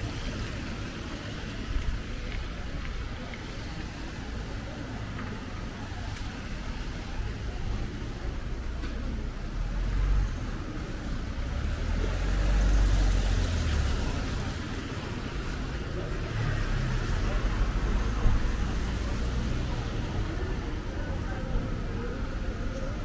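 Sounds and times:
cars passing on wet road: 0.0s - 23.0s
city noise: 0.0s - 23.0s.

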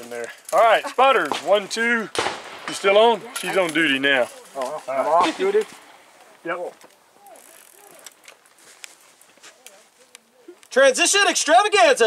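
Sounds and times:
murmur of distant voices: 0.0s - 10.8s
faint scattered clicks: 2.2s - 10.8s.

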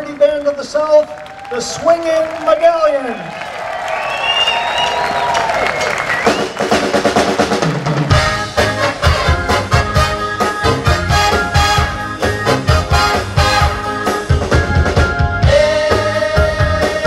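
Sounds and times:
bass guitar: 6.1s - 17.0s
drum kit steady beat: 6.1s - 17.0s
trumpets and trombone: 8.0s - 17.0s.

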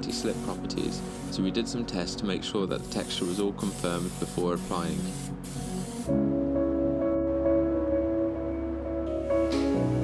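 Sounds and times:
spray gun hissing: 0.0s - 6.1s
background music with sustained notes: 0.0s - 10.0s.

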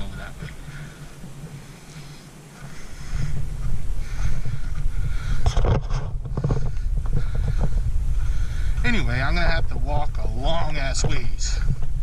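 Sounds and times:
footsteps on gravel: 0.0s - 12.0s
wind buffeting microphone: 0.0s - 12.0s.

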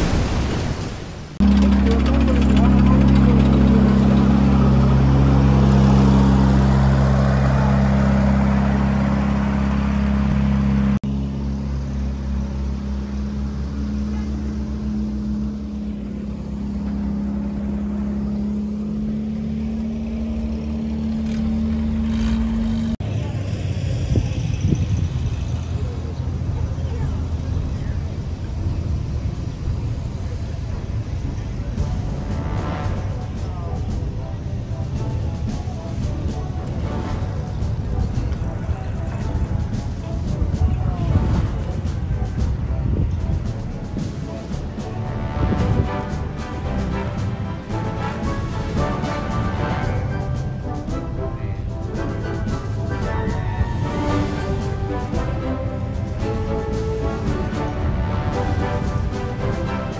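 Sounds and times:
people's voices: 1.4s - 9.3s, 12.6s - 22.3s, 23.0s - 59.9s
engine idling: 1.4s - 59.9s.

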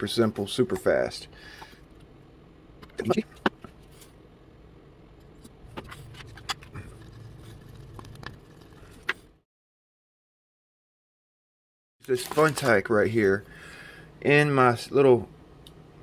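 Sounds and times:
low steady hum: 0.0s - 9.4s
wooden stick stirring in plastic palette: 5.7s - 9.1s.

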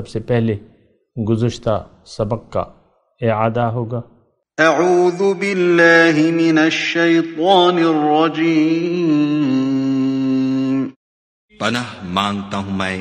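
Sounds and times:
man chanting melodically: 4.6s - 13.0s.

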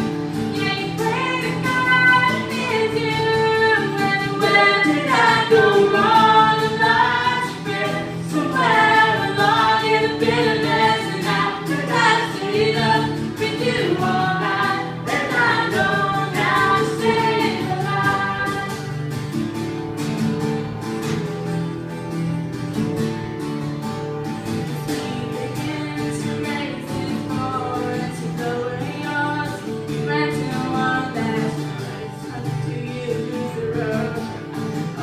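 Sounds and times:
strummed acoustic guitar: 0.0s - 35.0s
woman singing: 0.4s - 19.2s, 24.8s - 35.0s.

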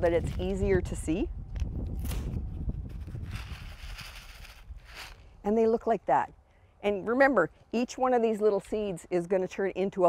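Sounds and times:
paper seed packet rustling: 2.0s - 5.4s
seeds shaken into hand: 2.9s - 5.2s.

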